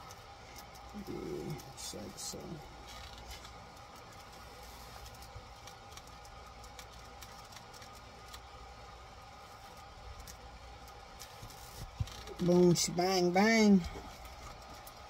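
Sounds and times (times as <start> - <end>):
clicks and rustles of hands: 0.0 - 12.6, 13.5 - 15.0
steady low hum: 0.0 - 15.0.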